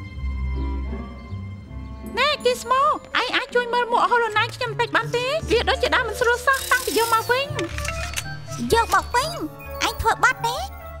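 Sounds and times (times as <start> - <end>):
light background music: 0.0 - 11.0
cartoon character speech: 8.7 - 10.7.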